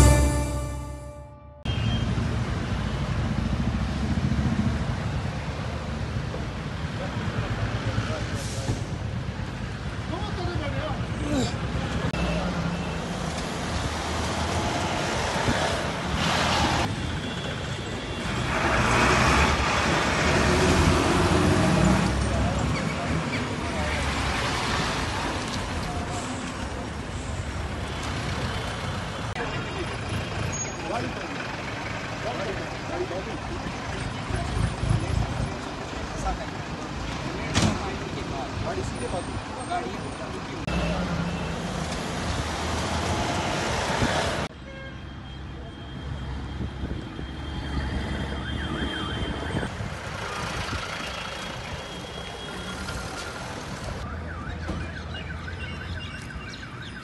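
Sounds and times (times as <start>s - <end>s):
vehicle engines humming: 0.0s - 16.9s
up-and-down siren wail: 48.1s - 49.7s.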